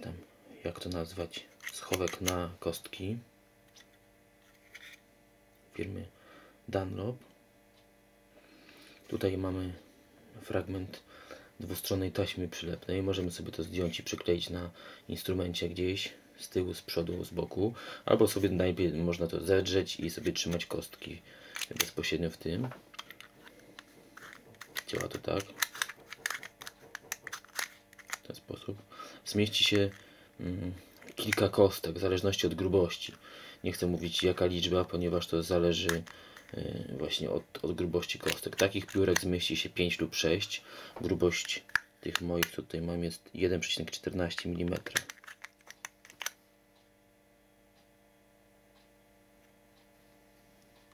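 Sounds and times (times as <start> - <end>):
plastic pick clicking into holder: 24.2 - 28.2, 44.8 - 46.4.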